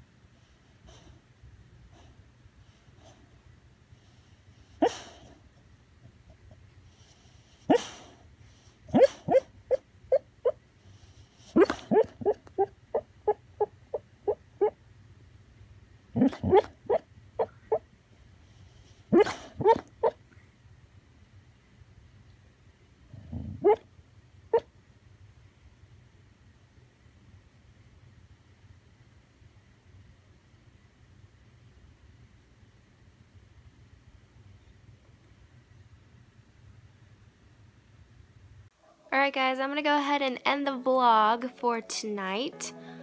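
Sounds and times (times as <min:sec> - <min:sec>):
dog whimpering: 0:08.9 - 0:10.6, 0:11.5 - 0:14.8, 0:16.2 - 0:17.8, 0:19.1 - 0:20.2, 0:23.3 - 0:23.8.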